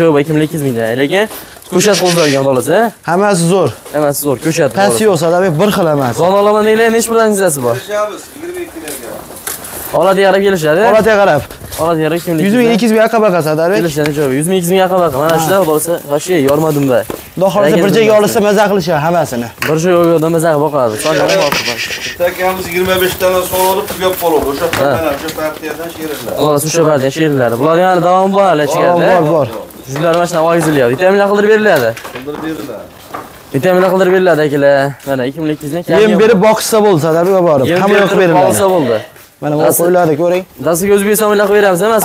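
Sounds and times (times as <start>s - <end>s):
sheep bleating: 1.8s - 2.5s, 20.9s - 22.2s.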